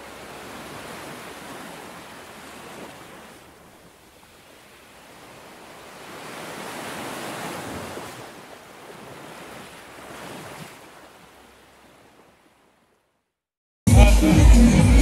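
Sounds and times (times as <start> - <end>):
small waves washing onto sand: 0.0 - 12.9.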